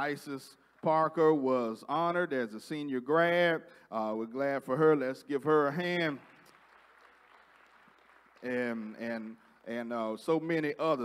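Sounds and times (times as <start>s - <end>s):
man speaking: 0.0s - 6.2s, 8.4s - 11.0s
faint congregation applause: 5.8s - 11.0s.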